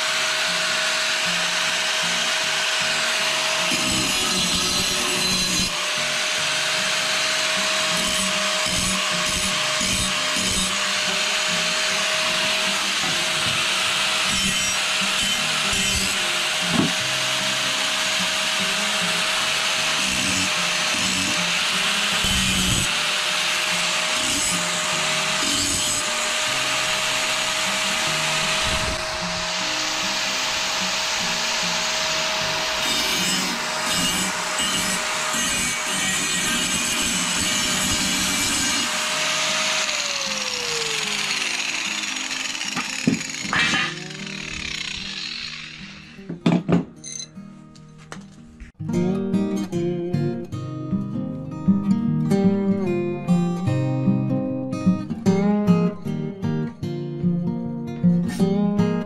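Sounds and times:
angle grinder grinding steel: 0.0s - 46.4s.

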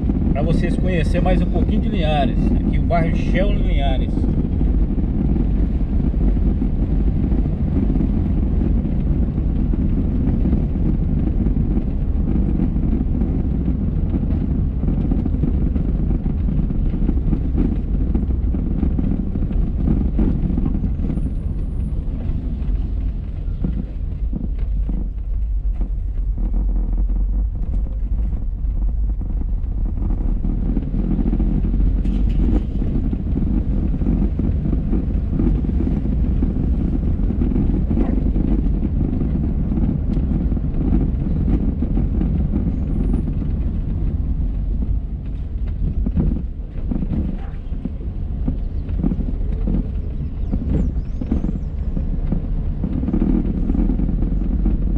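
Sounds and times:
car engine and tyre rumble: 0.0s - 54.9s.

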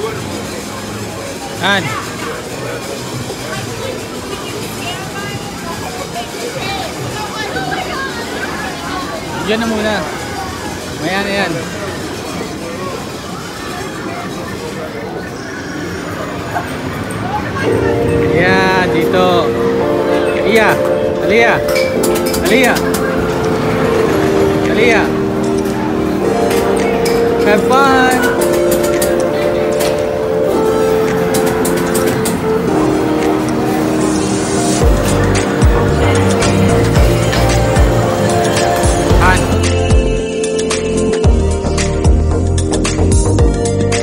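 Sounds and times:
crowd noise: 0.0s - 44.0s
arcade game electronic tunes: 17.7s - 44.0s.

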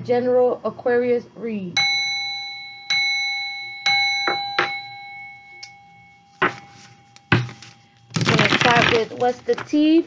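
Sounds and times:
small metal bell ringing: 1.8s - 9.0s.

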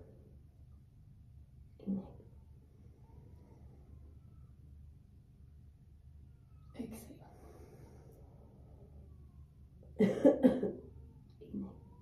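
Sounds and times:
woman coughing: 10.0s - 10.9s.

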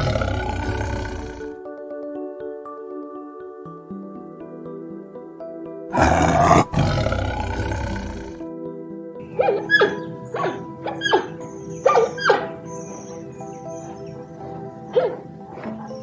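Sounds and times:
tiger roaring: 0.0s - 1.6s, 5.9s - 8.4s
background music: 0.0s - 16.0s.

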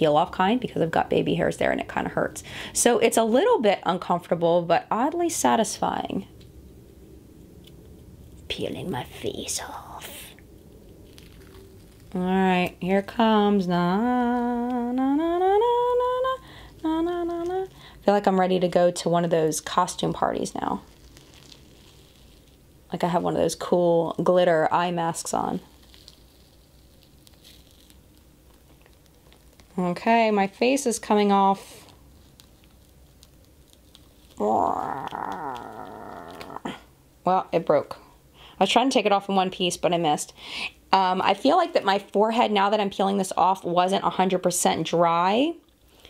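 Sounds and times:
face mask peeling off skin: 9.6s - 12.2s, 20.3s - 22.9s, 25.5s - 29.8s, 31.6s - 36.8s.

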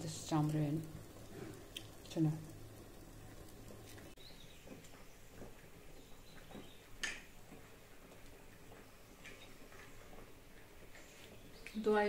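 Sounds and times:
small clicks and ticks: 0.0s - 11.9s.

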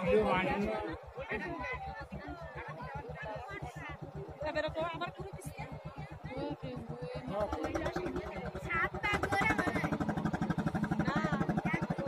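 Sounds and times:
boat engine chugging: 0.0s - 12.0s
voices: 0.0s - 12.0s.

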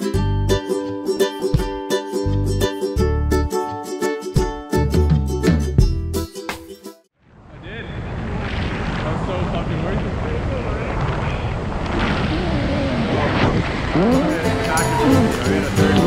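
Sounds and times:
music: 0.0s - 7.1s, 14.1s - 16.0s
wind rushing over microphone: 7.2s - 15.4s.

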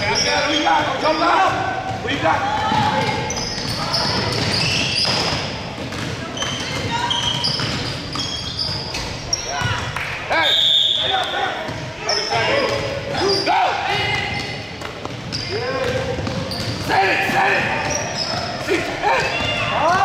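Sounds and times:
sneakers squeaking: 0.0s - 20.0s
people shouting: 16.8s - 20.0s.

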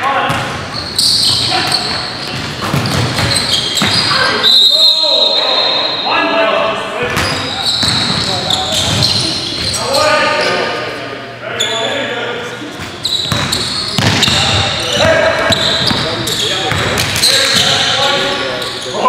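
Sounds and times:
players calling out: 0.3s - 19.0s.

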